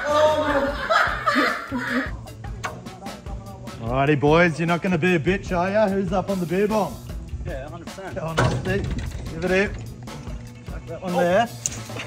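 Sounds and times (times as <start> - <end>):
men laughing and shouting: 0.0 - 3.8
music with steady beat: 0.9 - 12.0.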